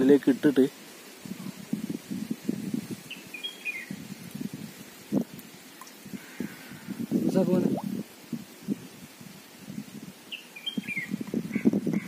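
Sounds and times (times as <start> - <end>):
small bird chirping: 3.1 - 4.0, 10.3 - 12.0.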